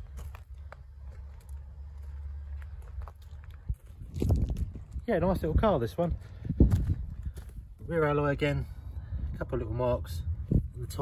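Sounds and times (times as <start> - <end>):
footsteps on gravel: 0.0 - 8.7
low rumble: 0.0 - 11.0.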